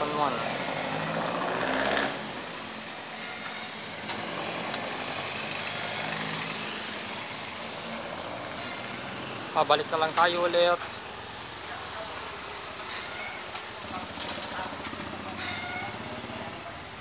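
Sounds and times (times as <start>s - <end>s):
motorcycle passing: 0.0s - 2.6s, 4.2s - 10.1s
street traffic noise: 0.0s - 17.0s.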